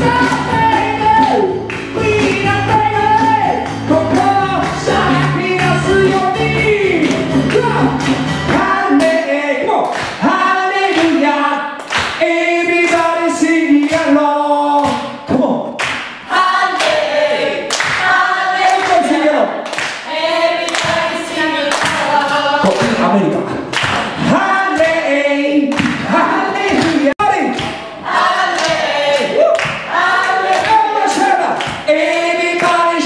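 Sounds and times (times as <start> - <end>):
voices singing together: 0.0 - 15.2, 16.2 - 33.0
hand claps: 0.2 - 2.6, 7.0 - 9.2, 9.8 - 10.2, 10.8 - 11.2, 11.8 - 13.1, 13.8 - 14.2, 14.8 - 15.1, 15.8 - 17.1, 17.7 - 19.0, 19.6 - 23.1, 23.7 - 24.2, 25.7 - 26.1, 26.7 - 27.9, 28.5 - 30.8, 31.5 - 33.0.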